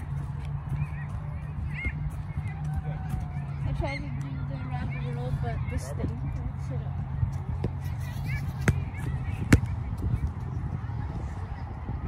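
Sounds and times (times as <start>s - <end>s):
soccer ball kicks: 7.0s - 12.0s.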